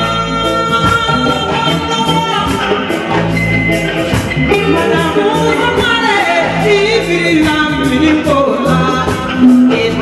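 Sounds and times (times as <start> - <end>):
woman singing into microphone: 0.0 - 3.6, 4.2 - 10.0
amplified band: 0.0 - 10.0
sustained bass notes: 0.0 - 10.0.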